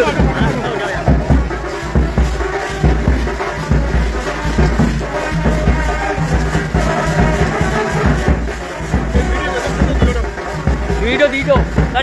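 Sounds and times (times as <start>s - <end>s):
music with steady drum beat: 0.0s - 12.0s.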